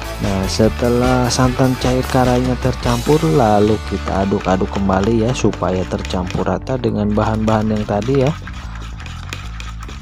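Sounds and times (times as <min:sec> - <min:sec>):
background music: 0:00.0 - 0:10.0
spatula stirring batter in bowl: 0:00.0 - 0:10.0.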